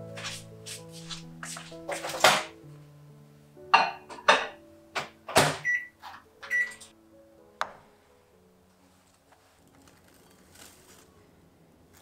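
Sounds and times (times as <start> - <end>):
microwave beeps: 5.6 - 6.9.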